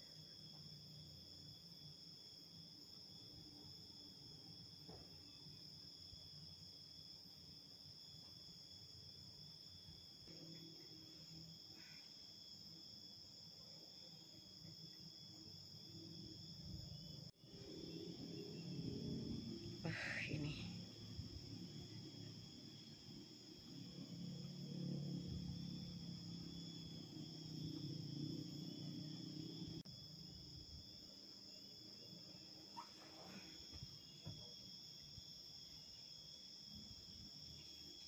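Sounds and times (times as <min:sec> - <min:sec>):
insects chirring: 0:00.0 - 0:38.0.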